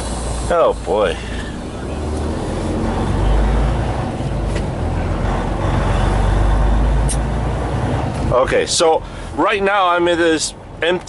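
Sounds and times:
diesel truck engine rumbling: 0.0 - 11.0.

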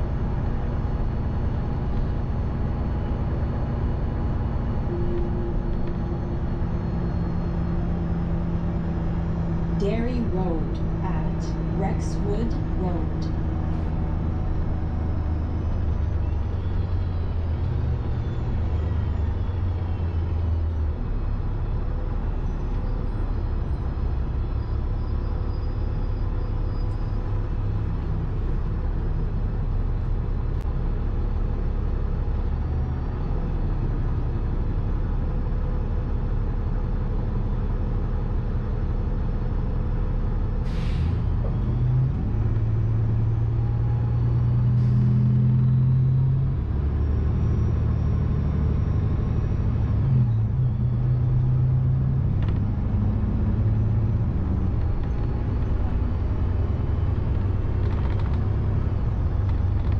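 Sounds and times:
bus engine and road rumble: 0.0 - 59.9.

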